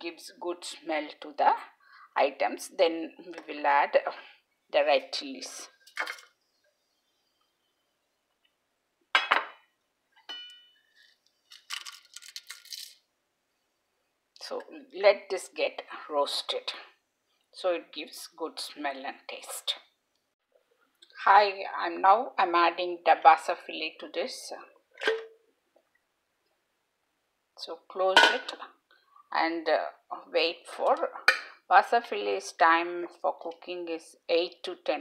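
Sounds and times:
metal clinking on pot: 10.2 - 10.9, 28.2 - 28.5.

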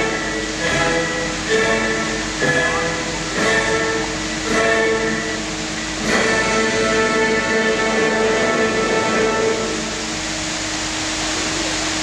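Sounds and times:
show music held chord: 0.0 - 10.4
fountain water jets hissing: 0.0 - 12.0.

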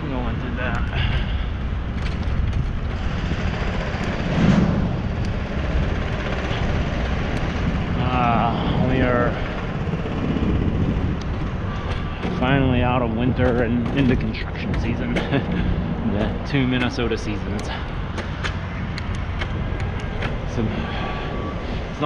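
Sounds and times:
bicycle road rumble: 0.0 - 22.0
wind noise: 0.0 - 22.0.

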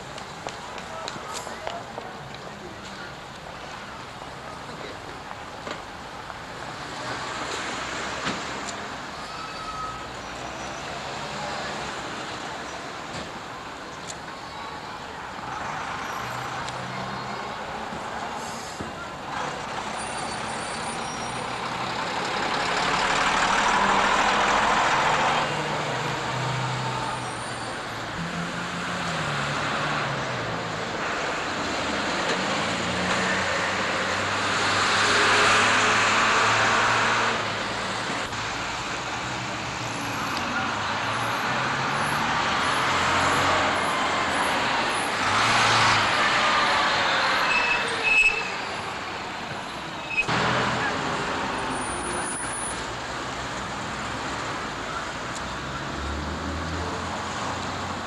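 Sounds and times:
buses and lorry passing: 0.0 - 58.0.

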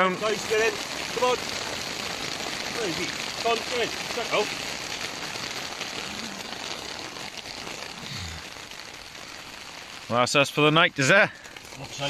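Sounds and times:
rain falling on a tent: 0.0 - 12.0.

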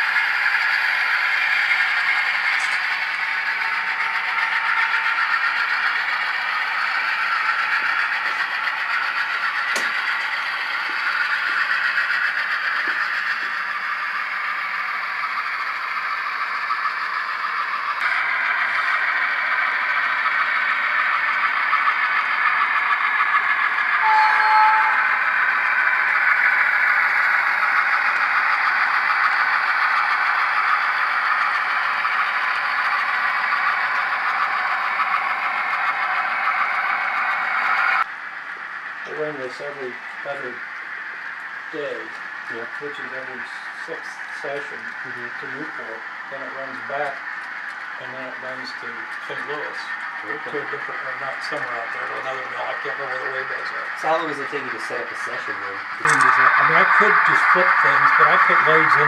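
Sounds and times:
model trains rolling on track: 0.0 - 59.0
brief tone: 24.0 - 25.1.

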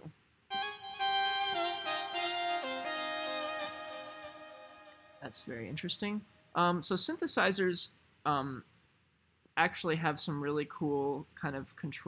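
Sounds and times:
synthesizer sustained notes: 0.5 - 5.3.

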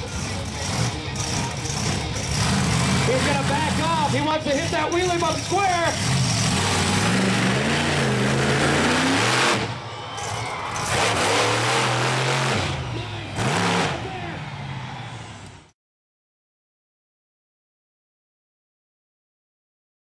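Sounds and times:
monster truck engine revving: 0.0 - 15.7.

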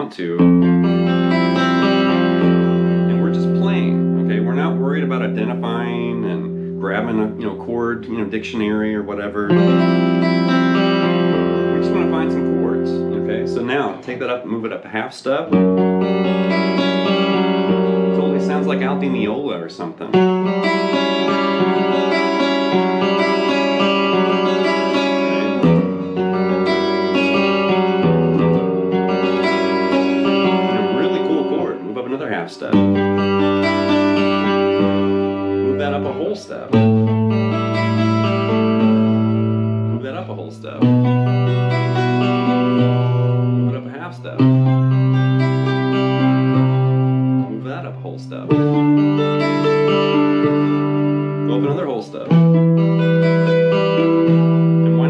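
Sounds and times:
clean electric guitar chords: 0.0 - 14.8, 15.4 - 55.0.

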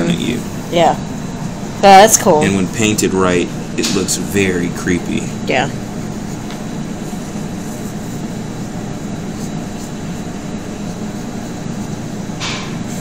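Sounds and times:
room hum with hiss: 0.0 - 13.0.

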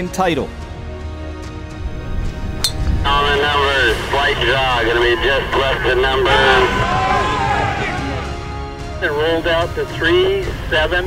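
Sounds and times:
background music with low bass: 0.0 - 11.0.

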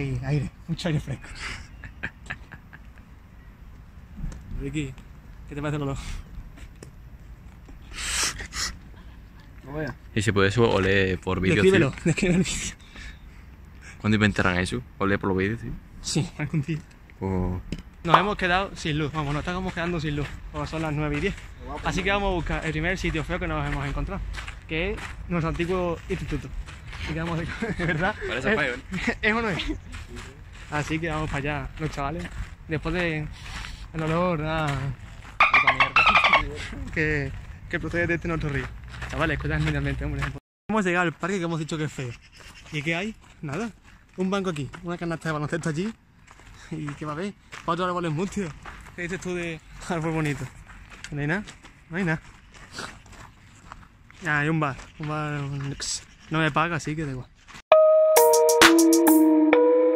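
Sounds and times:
person breathing out in bursts: 7.8 - 8.8.

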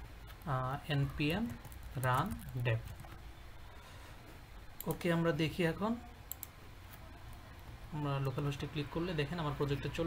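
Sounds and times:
low steady hum: 0.0 - 10.0
mouse clicks: 6.3 - 7.4.

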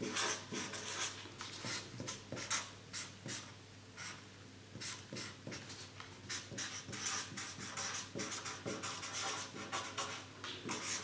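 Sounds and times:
pen scratching on paper: 6.3 - 11.0.

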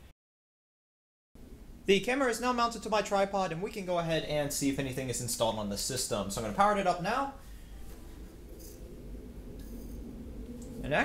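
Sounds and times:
computer fans whirring: 1.4 - 11.0.

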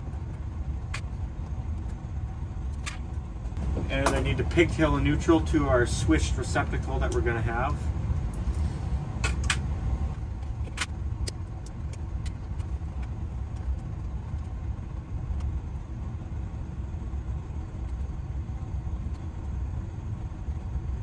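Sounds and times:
low mechanical rumble: 0.0 - 21.0
electrical wires clicking: 2.7 - 5.4, 9.2 - 14.5.

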